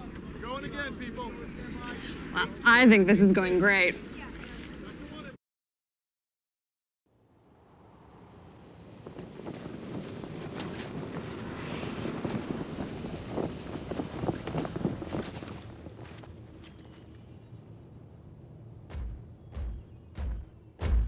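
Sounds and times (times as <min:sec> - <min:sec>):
rushing crackling swell: 0:07.3 - 0:19.4.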